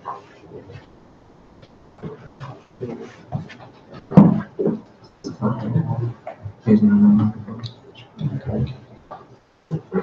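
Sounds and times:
quiet indistinct voices: 0:00.0 - 0:01.0, 0:01.9 - 0:10.0.

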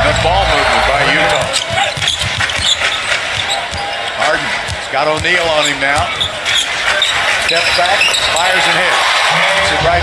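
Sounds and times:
arena crowd noise: 0:00.0 - 0:10.0
basketball dribbling on hardwood: 0:01.4 - 0:03.9, 0:04.6 - 0:06.4.

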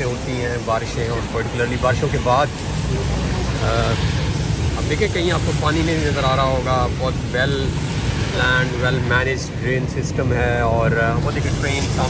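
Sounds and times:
rain hissing on wet pavement: 0:00.0 - 0:12.0
road traffic rumble: 0:00.0 - 0:12.0.

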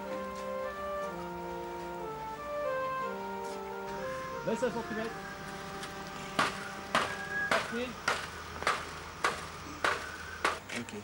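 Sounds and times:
hammering: 0:06.4 - 0:10.7.

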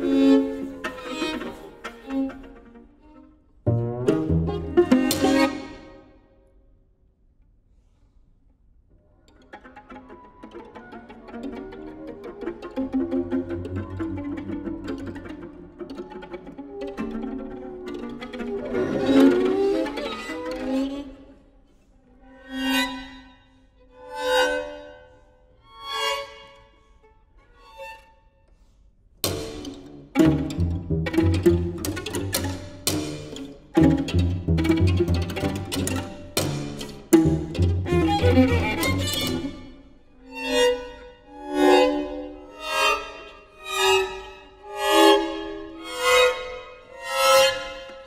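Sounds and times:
string quartet playing: 0:00.0 - 0:06.3, 0:09.0 - 0:48.0.

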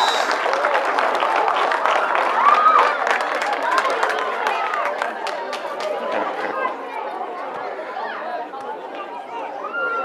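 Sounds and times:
crowd applause: 0:00.0 - 0:07.0
crowd chattering: 0:00.0 - 0:10.0.

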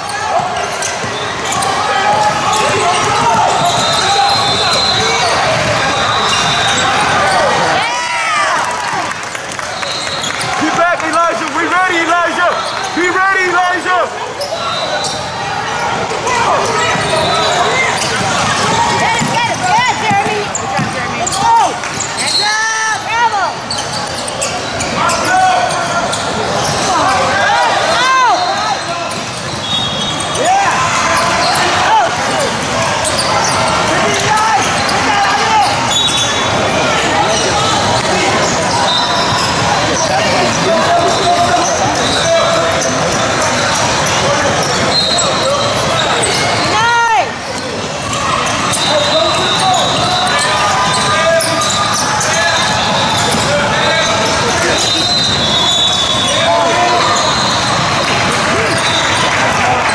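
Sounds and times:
sneakers squeaking: 0:00.0 - 0:59.9
voices of players and spectators: 0:00.0 - 0:59.9
basketball bouncing on floor: 0:18.2 - 0:22.1.

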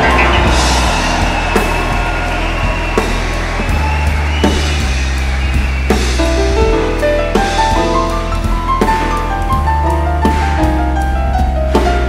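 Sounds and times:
jazz band and orchestra playing: 0:00.0 - 0:02.0, 0:05.0 - 0:12.0
drum hits: 0:00.0 - 0:12.0.

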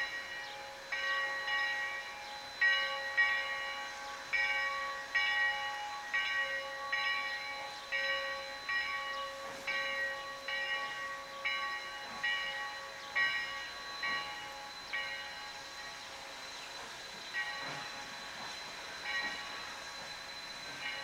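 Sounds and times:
locomotive bell ringing: 0:00.0 - 0:21.0.

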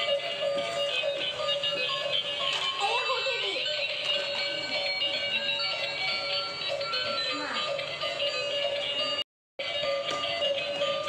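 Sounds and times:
tinny electronic toy tune: 0:00.0 - 0:11.0.

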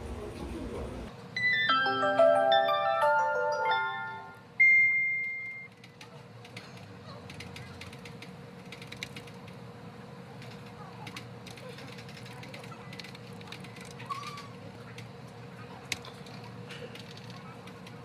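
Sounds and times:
electronic jingle: 0:01.4 - 0:05.7.

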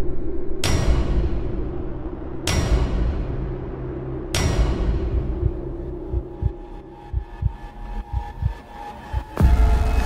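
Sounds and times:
low heartbeat-like thuds: 0:04.4 - 0:10.0.

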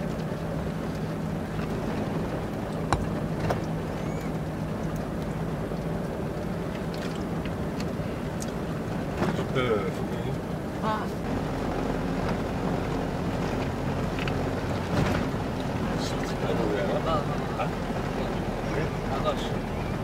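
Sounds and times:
vehicle engine and road rumble: 0:00.0 - 0:20.0.

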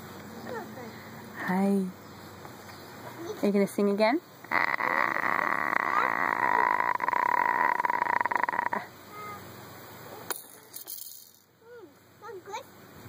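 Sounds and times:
baby vocalizing croakily: 0:04.5 - 0:08.9
baby cooing: 0:04.5 - 0:09.4.

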